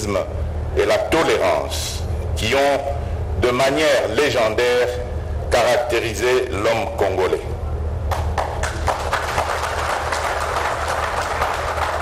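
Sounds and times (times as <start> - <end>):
steady low hum: 0.0 - 12.0
audience applauding: 8.1 - 12.0.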